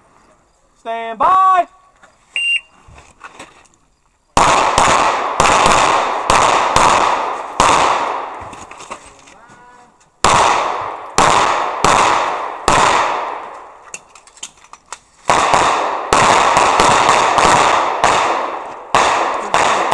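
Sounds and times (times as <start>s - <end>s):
pistol shots with ringing echo: 4.4s - 8.4s, 10.2s - 13.8s, 15.3s - 19.9s.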